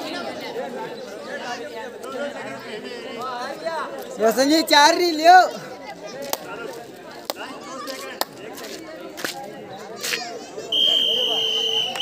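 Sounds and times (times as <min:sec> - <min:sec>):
spectators and players voices: 0:00.0 - 0:12.0.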